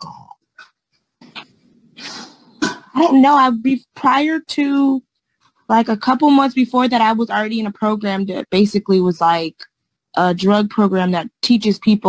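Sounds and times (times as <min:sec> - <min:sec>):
person coughing: 0:02.0 - 0:03.0.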